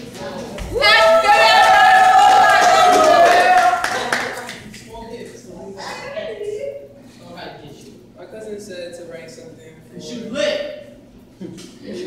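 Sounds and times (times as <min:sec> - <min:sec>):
audience clapping: 0:00.8 - 0:04.9.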